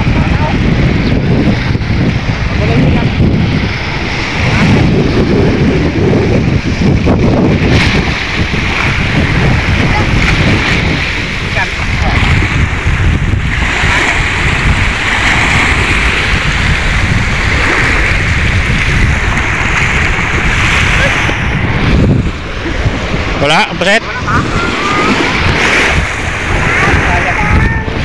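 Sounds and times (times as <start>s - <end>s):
waves washing onto pebble shore: 0.0s - 28.0s
wind buffeting microphone: 0.0s - 28.0s
person calling out: 24.0s - 25.2s.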